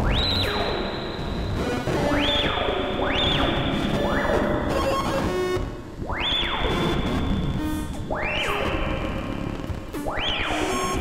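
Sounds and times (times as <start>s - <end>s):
gritty noisy synth bed: 0.0s - 11.0s.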